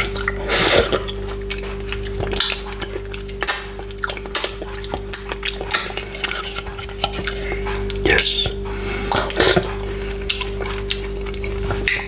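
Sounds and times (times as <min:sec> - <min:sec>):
steady low hum: 0:00.0 - 0:12.0
wet mouth smacks and clicks: 0:01.0 - 0:06.3, 0:10.3 - 0:12.0.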